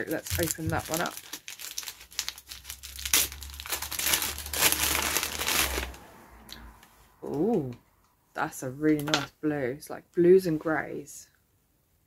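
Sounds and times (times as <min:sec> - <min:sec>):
wrapping paper crinkling: 0:00.0 - 0:06.0.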